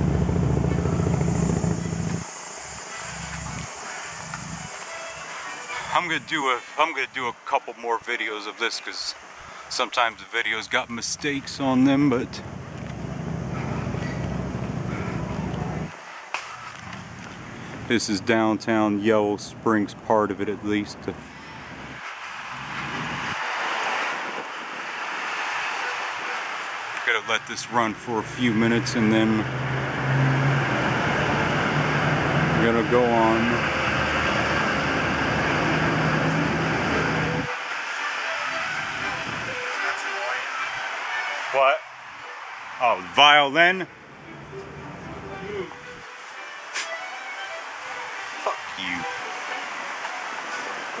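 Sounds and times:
low street rumble: 0.0s - 51.0s
truck engine and tyre noise: 0.0s - 51.0s.

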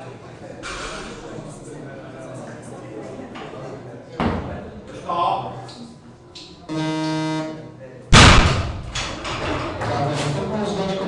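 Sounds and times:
electronic tone: 6.7s - 7.7s.

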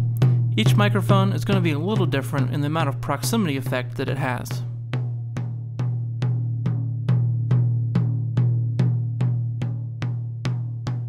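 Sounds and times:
drum beating with low ring: 0.0s - 11.0s.

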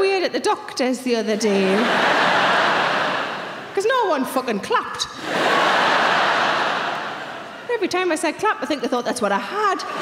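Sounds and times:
audience laughing: 1.3s - 3.7s, 5.2s - 7.7s.

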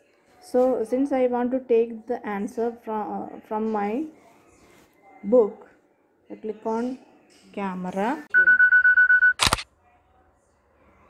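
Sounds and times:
camera shutter click: 9.4s - 9.6s.

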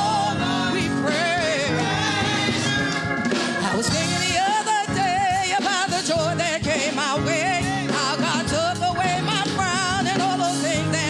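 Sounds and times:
woman singing gospel with vibrato: 0.0s - 11.0s.

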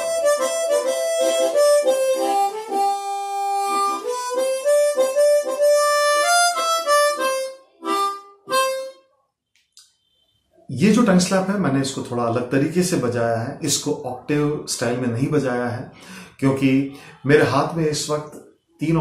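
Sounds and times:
harmonica melody with tongue slaps: 0.0s - 9.0s.

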